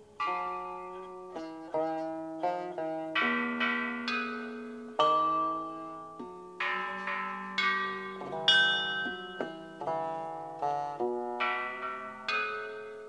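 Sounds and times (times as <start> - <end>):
plucked string instrumental music: 0.0 - 13.0.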